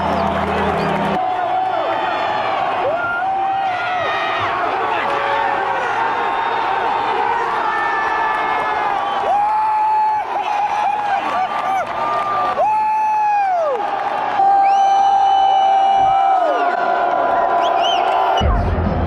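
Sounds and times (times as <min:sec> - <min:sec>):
fans yelling long shouts: 0:00.0 - 0:18.6
stadium crowd cheering: 0:00.0 - 0:19.0.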